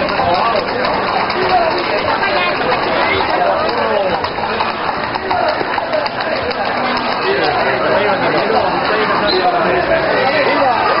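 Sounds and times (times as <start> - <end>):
crowd chatter: 0.0 - 11.0
horse hooves clopping on street: 0.0 - 11.0.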